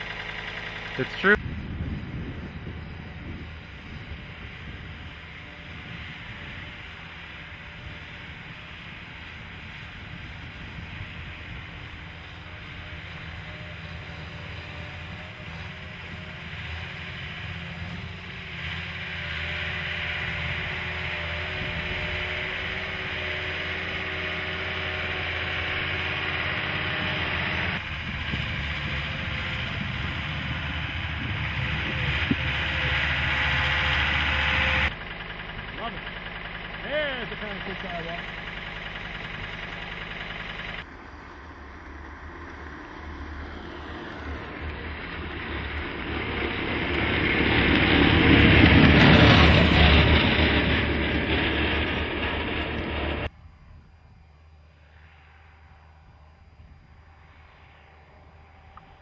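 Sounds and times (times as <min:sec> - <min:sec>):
tracked vehicle engine under load: 0:00.0 - 0:53.4, 0:55.1 - 0:59.0.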